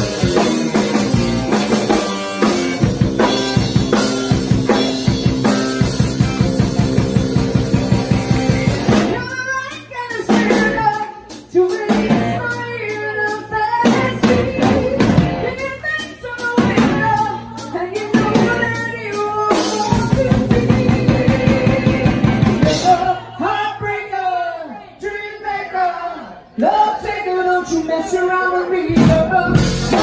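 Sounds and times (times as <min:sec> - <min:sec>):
electric guitar riff: 0:00.0 - 0:11.0, 0:29.5 - 0:30.0
drum kit: 0:00.0 - 0:23.2, 0:28.9 - 0:30.0
woman singing: 0:09.0 - 0:30.0.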